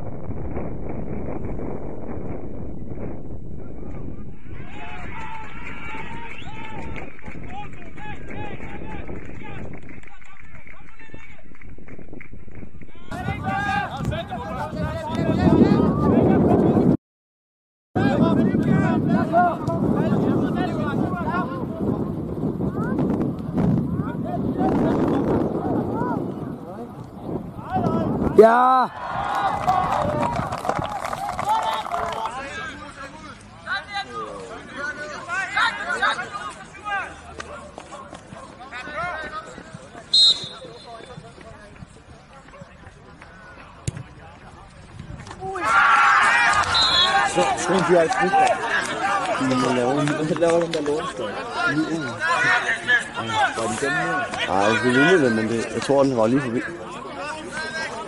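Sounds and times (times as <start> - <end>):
players shouting: 13.0 - 16.4, 27.5 - 41.7, 45.4 - 58.0
referee's whistle blast: 40.1 - 41.2, 46.6 - 47.4
distant players shouting: 45.4 - 50.3.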